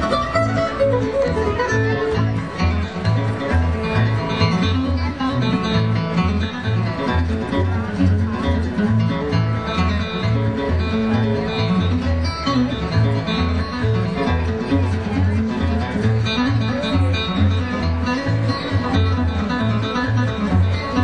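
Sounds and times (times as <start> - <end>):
acoustic guitar picking: 0.0 - 21.0
mandolin picking: 0.0 - 21.0
upright bass plucking: 0.0 - 21.0.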